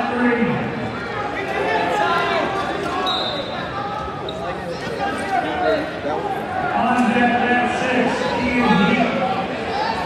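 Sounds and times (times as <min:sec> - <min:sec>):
crowd of overlapping voices: 0:00.0 - 0:10.0.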